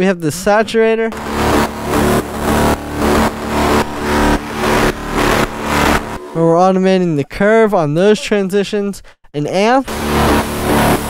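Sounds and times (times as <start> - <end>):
distorted synth bass: 0.5 - 8.1, 9.9 - 11.0
hard beat hits: 1.1 - 6.8.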